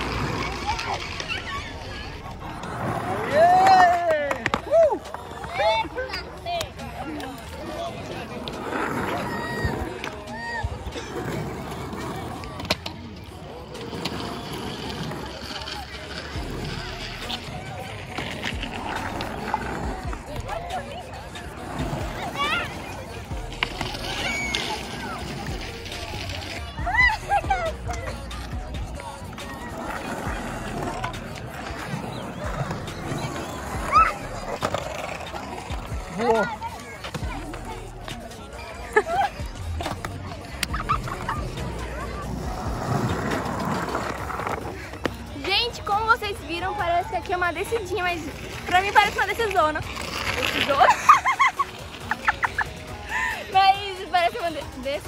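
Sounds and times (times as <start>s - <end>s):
skateboard wheels rolling on concrete: 0.0s - 55.0s.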